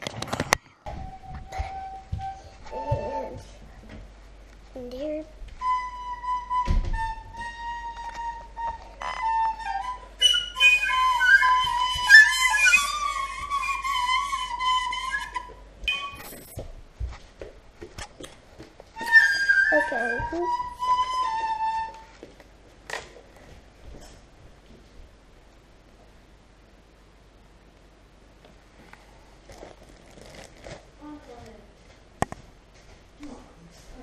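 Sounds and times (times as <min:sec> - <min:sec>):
high flute-like piping notes: 0:00.9 - 0:03.5, 0:05.6 - 0:16.6, 0:19.0 - 0:22.2.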